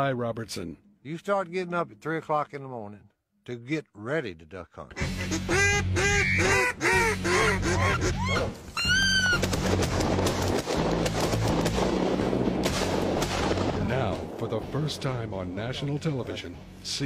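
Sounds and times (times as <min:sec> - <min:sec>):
background music: 0:04.9 - 0:17.0
duck call quacking: 0:05.0 - 0:09.4
rapid shotgun fire: 0:09.4 - 0:14.9.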